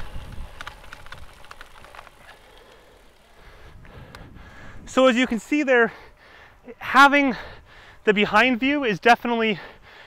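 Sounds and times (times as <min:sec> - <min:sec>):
wind and rolling noise: 0:00.0 - 0:09.3
faint clicks: 0:00.1 - 0:04.3.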